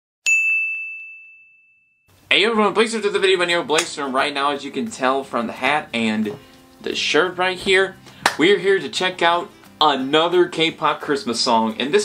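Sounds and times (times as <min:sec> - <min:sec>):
high ding: 0:00.3 - 0:02.1.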